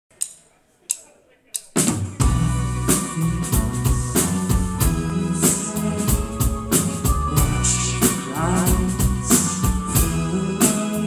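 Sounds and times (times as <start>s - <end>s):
drumstick count-in clicks: 0.1s - 1.8s
rock band playing: 1.7s - 11.0s.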